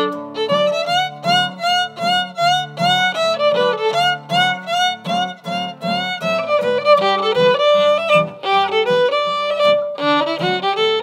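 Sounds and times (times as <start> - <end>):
acoustic guitars strumming: 0.0 - 11.0
fiddle playing swing tune: 0.0 - 11.0.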